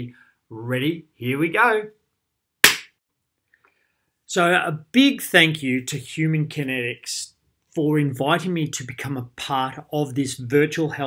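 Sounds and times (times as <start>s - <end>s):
sharp hand clap: 2.6s - 3.0s.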